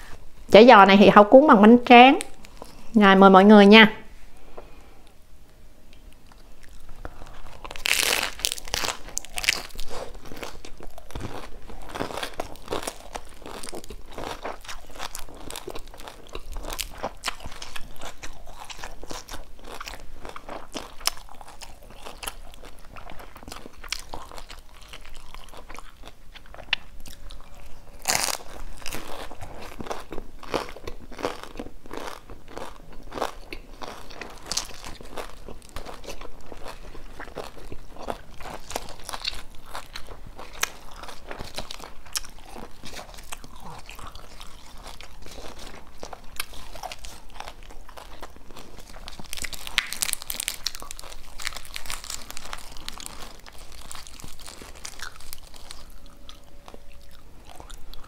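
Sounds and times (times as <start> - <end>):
crunching and chewing food: 2.2 - 3.0, 5.9 - 58.0.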